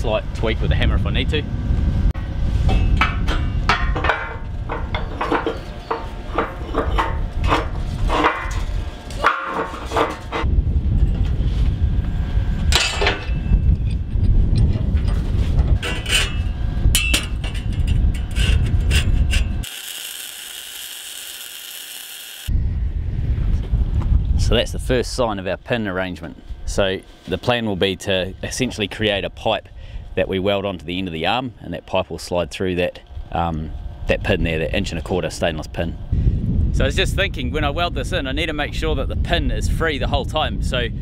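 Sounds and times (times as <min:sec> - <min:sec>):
low rumble: 0:00.0 - 0:19.7, 0:22.5 - 0:30.3, 0:33.0 - 0:41.0.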